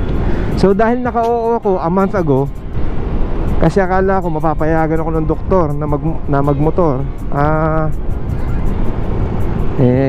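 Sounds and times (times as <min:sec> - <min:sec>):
background music: 0:00.0 - 0:10.0
scooter road noise: 0:00.0 - 0:10.0
wind rush: 0:00.0 - 0:10.0.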